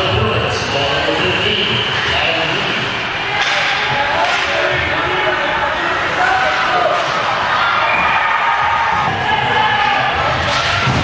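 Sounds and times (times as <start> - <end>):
rink crowd noise: 0.0 - 11.0
hockey stick hitting puck: 3.3 - 5.0.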